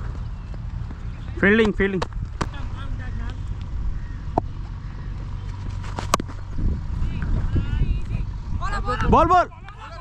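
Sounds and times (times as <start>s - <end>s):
wind rumble on microphone: 2.2s - 10.0s.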